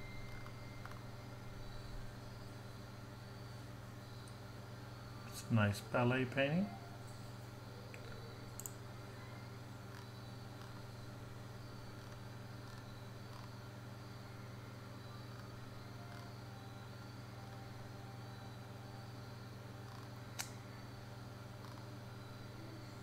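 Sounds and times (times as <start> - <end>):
low electrical hum: 0.0 - 23.0
sharp click: 20.4 - 20.6.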